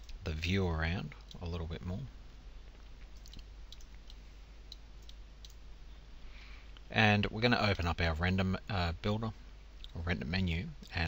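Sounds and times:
low electrical hum: 0.0s - 11.0s
computer mouse clicks: 3.2s - 5.6s.

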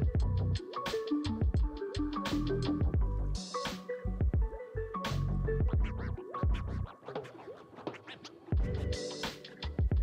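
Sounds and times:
music with heavy bass beat: 0.0s - 10.0s
sliding scratch-like sounds: 6.9s - 8.6s.

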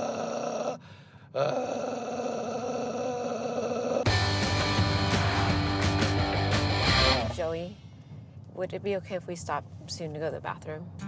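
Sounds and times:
loud music with bass and guitar: 4.1s - 7.4s.

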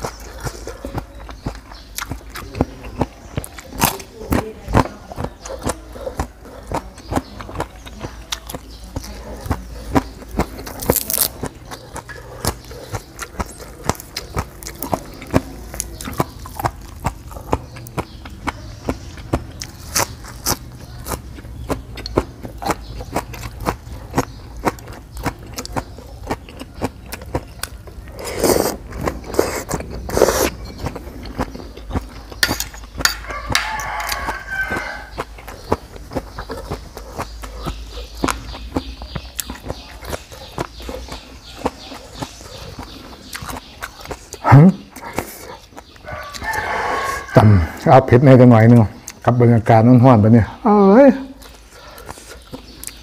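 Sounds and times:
wet crunchy chewing: 0.0s - 50.4s, 51.2s - 53.0s.

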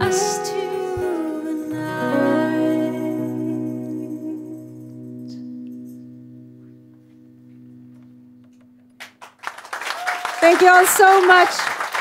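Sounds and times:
audience applause: 9.0s - 12.0s.

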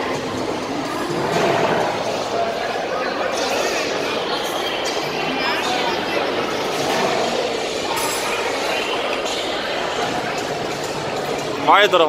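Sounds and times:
food court hubbub and clatter: 0.0s - 12.0s.

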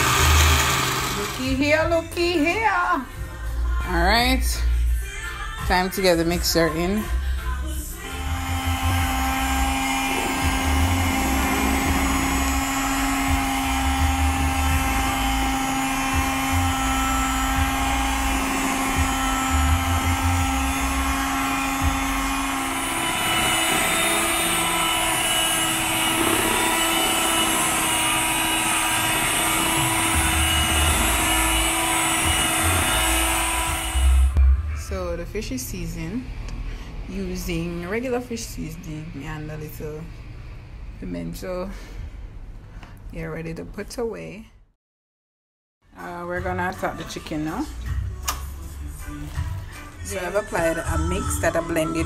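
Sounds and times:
electric hand mixer running: 0.0s - 1.7s, 7.9s - 34.4s
dull bumps of mixer beaters: 0.0s - 2.0s, 8.0s - 34.4s.

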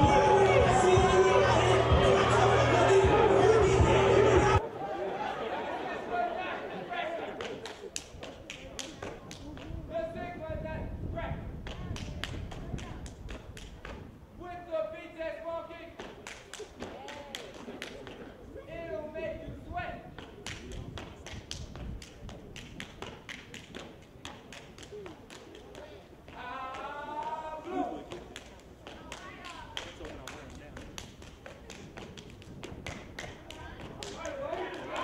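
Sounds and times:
murmur of crowd voices: 0.0s - 35.0s
hand claps and body slaps: 7.4s - 9.8s, 11.6s - 14.1s, 16.0s - 18.3s, 20.2s - 27.4s, 28.1s - 35.0s.

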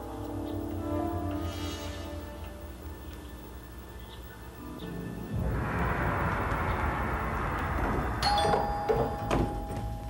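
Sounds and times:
doorbell chiming ding-dong: 8.2s - 10.0s.

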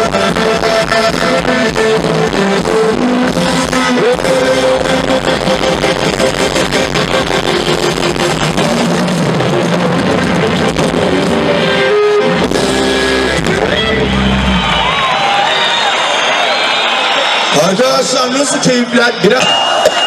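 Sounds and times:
live rock band playing: 0.0s - 17.5s.

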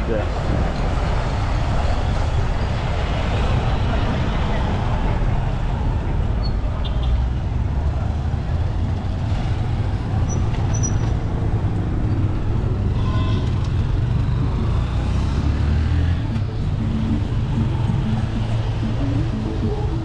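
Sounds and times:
motorcycle engines: 0.0s - 20.0s
traffic rumble: 0.0s - 20.0s.

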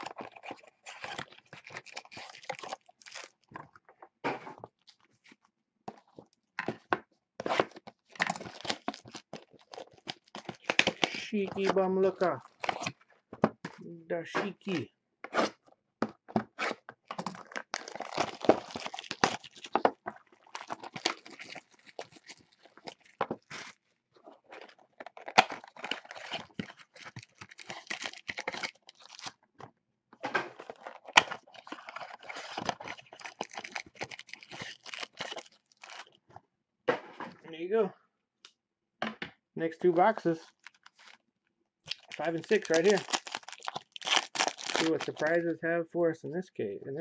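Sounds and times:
card packs rustling and clicking: 0.0s - 3.5s, 5.9s - 13.0s, 16.5s - 23.8s, 24.4s - 29.4s, 30.4s - 36.2s, 39.9s - 41.2s, 41.9s - 45.5s
plastic wrap tearing and crinkling: 0.0s - 3.5s, 7.4s - 12.9s, 16.6s - 23.8s, 24.4s - 29.4s, 30.5s - 36.2s, 40.4s - 41.2s, 41.9s - 45.5s.

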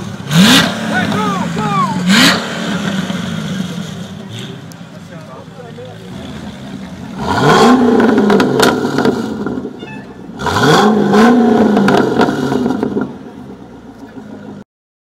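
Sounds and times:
car engine idling: 0.0s - 14.6s
car engine revving: 0.0s - 14.6s
exhaust pops: 2.1s - 9.7s.

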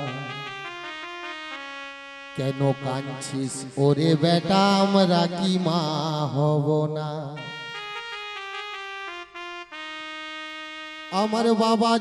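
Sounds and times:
man singing: 0.0s - 0.7s, 2.4s - 7.8s, 11.1s - 12.0s
electronic keyboard: 0.0s - 12.0s.

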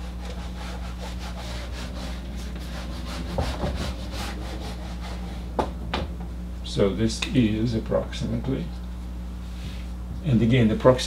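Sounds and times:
eraser wiping a whiteboard: 0.0s - 5.5s
steady low hum: 0.0s - 11.0s.

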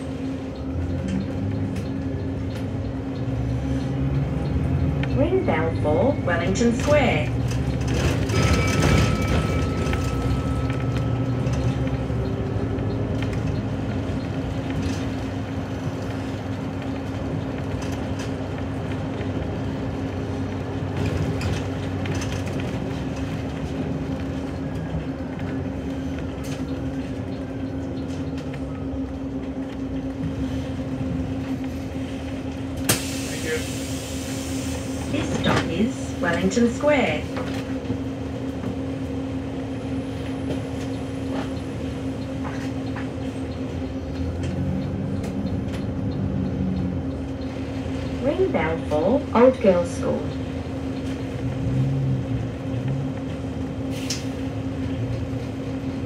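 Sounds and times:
bus engine hum and rumble: 0.0s - 56.0s
air brake hiss: 32.9s - 35.1s.

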